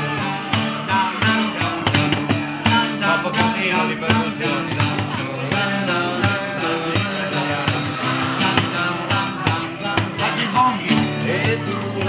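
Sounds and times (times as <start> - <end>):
live band playing pop song: 0.0 - 12.0.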